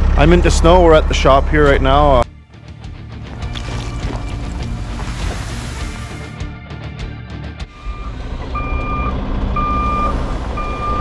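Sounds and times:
truck engine rumbling: 0:00.0 - 0:11.0
sand pouring onto a pile: 0:03.5 - 0:06.4.

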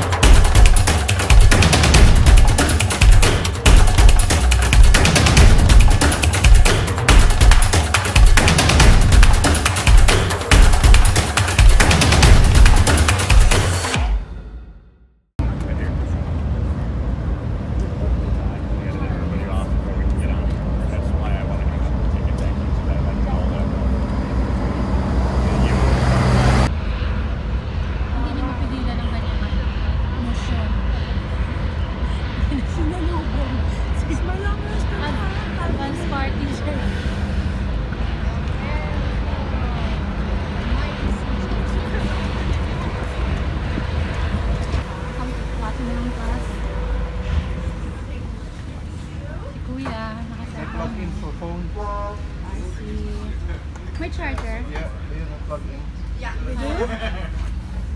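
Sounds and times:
low rumble: 0:00.0 - 0:56.4
low hum: 0:00.0 - 0:57.9
indistinct voices: 0:28.0 - 0:53.7.

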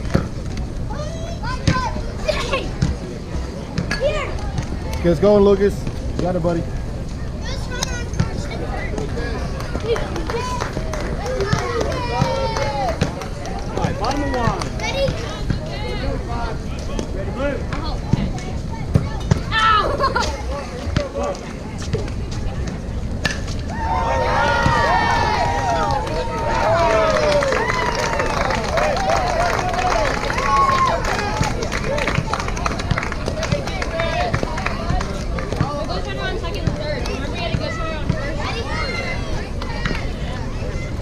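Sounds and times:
spectators shouting and cheering: 0:07.4 - 0:16.6, 0:19.4 - 0:21.1, 0:23.2 - 0:41.0.

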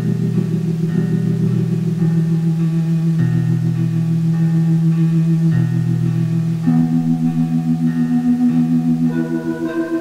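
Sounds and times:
sustained synthesizer chords: 0:00.0 - 0:10.0.

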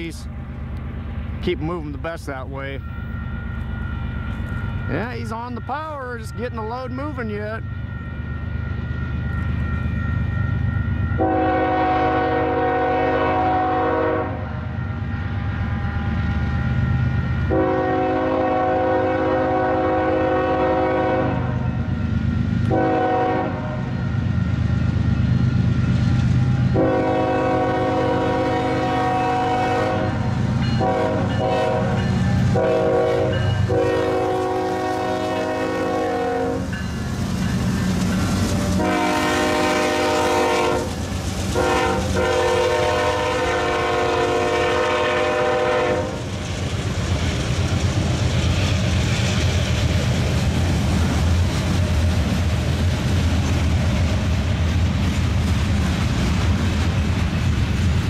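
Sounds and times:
diesel locomotive engines rumbling: 0:00.0 - 0:58.0
locomotive air horn blasts: 0:11.2 - 0:14.5, 0:17.5 - 0:21.6, 0:22.7 - 0:23.9, 0:26.7 - 0:36.7, 0:38.8 - 0:40.9, 0:41.5 - 0:46.3.

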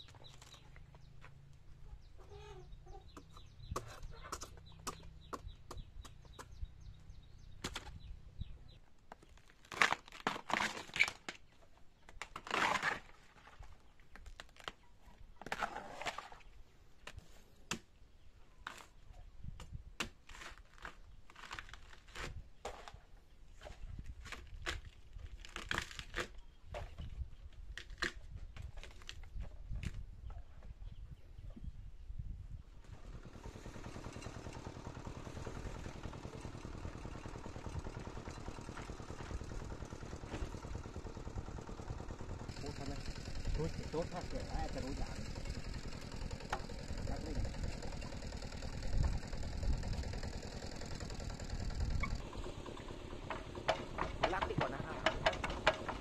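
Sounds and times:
chickens clucking: 0:02.2 - 0:05.9
sheaths tearing: 0:09.4 - 0:11.4, 0:12.2 - 0:13.7, 0:20.2 - 0:23.0
machete slicing bamboo: 0:09.6 - 0:11.4, 0:12.2 - 0:13.2, 0:24.2 - 0:26.4
low hum: 0:32.8 - 0:56.0.

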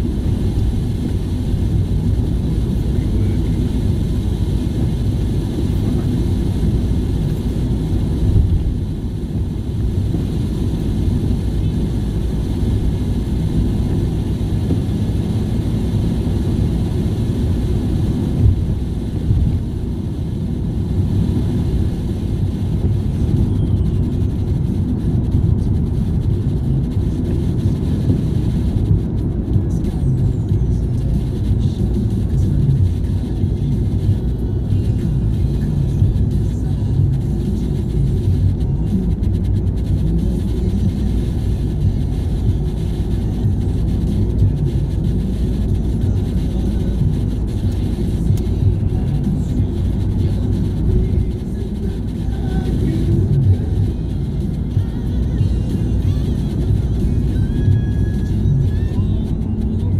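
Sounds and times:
car road and engine rumble: 0:00.0 - 0:59.9
music playing: 0:22.7 - 0:59.9.

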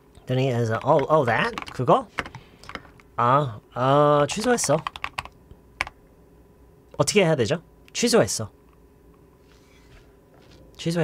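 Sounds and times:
keyboard typing: 0:00.7 - 0:02.9, 0:04.3 - 0:06.0.

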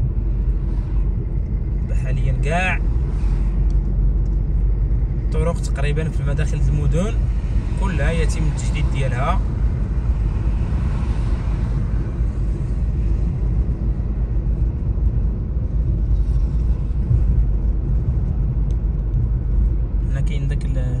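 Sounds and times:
car driving engine and tyre noise: 0:00.0 - 0:21.0.

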